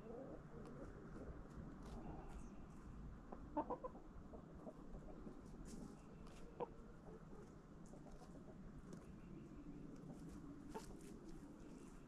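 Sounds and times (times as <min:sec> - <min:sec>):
hens clucking: 0:03.3 - 0:05.5, 0:10.0 - 0:11.9.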